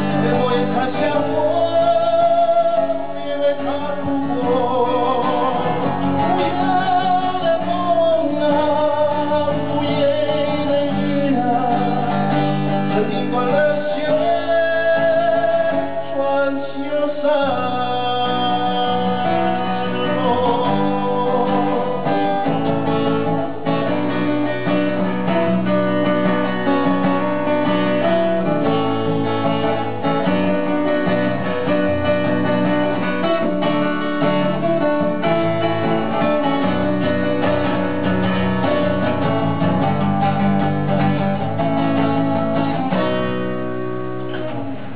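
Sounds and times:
solo acoustic guitar chords: 0.0s - 44.9s.

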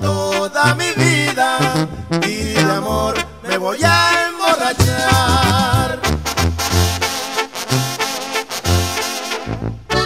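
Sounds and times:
brass section playing: 0.0s - 10.0s
low bass line: 1.7s - 4.0s, 4.8s - 7.0s
steady percussion: 4.8s - 6.4s.

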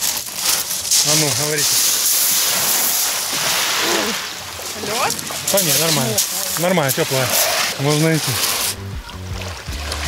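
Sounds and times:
waves washing up a pebble beach: 0.0s - 8.8s.

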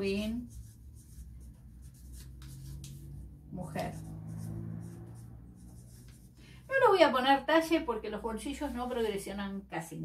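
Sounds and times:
marker pen scratching on paper: 0.0s - 7.2s.

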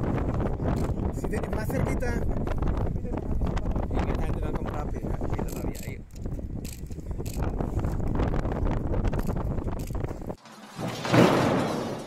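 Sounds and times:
wind buffeting microphone: 0.0s - 10.4s.

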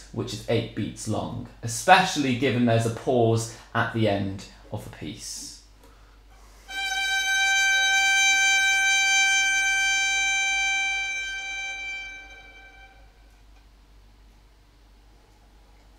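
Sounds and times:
violin long bowed note: 6.7s - 13.4s.

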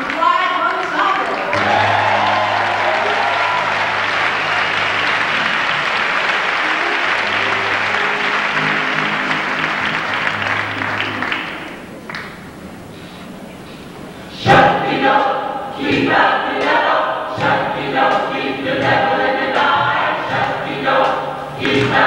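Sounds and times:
audience applauding: 0.0s - 12.9s.

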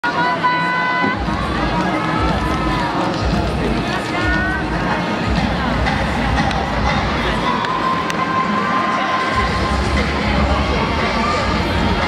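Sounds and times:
music over loudspeakers: 0.0s - 12.0s
spectators chattering: 0.0s - 12.0s.

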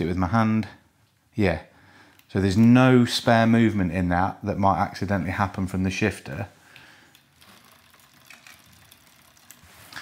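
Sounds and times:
bike drivetrain ticking: 6.8s - 10.0s.

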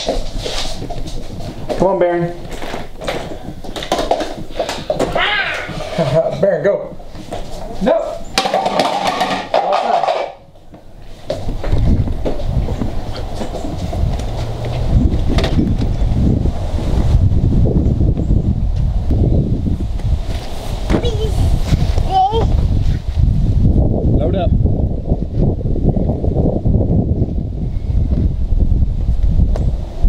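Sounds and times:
wind buffeting microphone: 0.0s - 6.1s, 10.8s - 30.0s.

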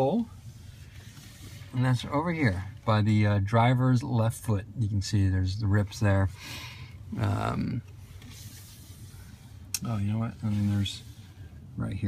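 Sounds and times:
handheld camera rubbing hiss: 0.4s - 1.8s, 8.0s - 11.4s.

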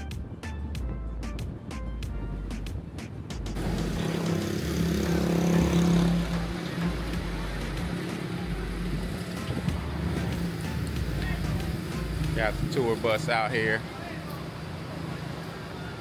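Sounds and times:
background music with a beat: 0.0s - 4.4s, 5.2s - 12.8s
bus engine drone: 3.4s - 16.0s.

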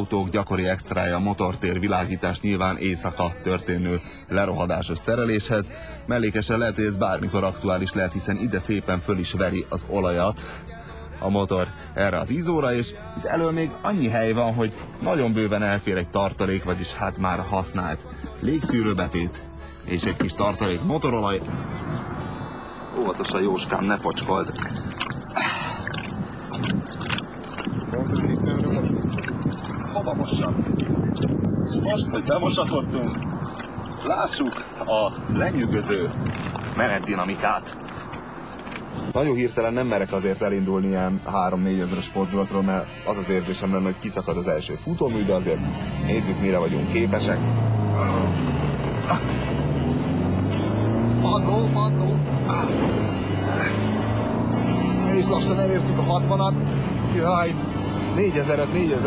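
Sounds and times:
water splashing on hands: 23.7s - 30.1s, 33.0s - 38.9s
car engine accelerating hard: 45.5s - 59.0s.

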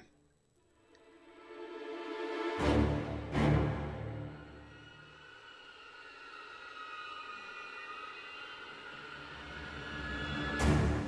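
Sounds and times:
high sustained string tones: 1.0s - 11.0s.

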